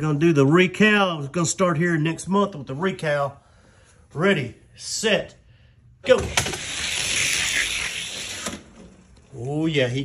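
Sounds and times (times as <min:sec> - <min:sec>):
toy cars rolling down track: 0:06.2 - 0:08.8.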